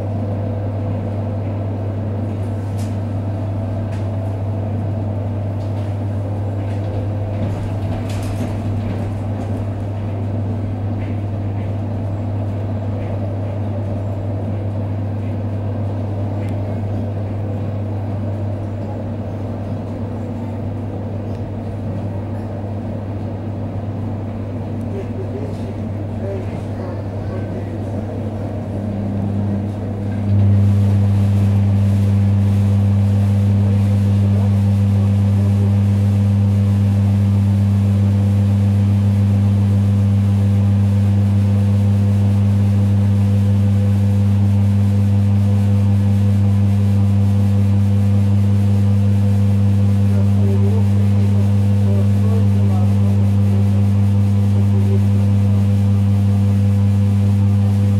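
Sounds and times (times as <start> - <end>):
train carriage running noise: 0.0 - 36.9
electric train hum: 0.0 - 57.9.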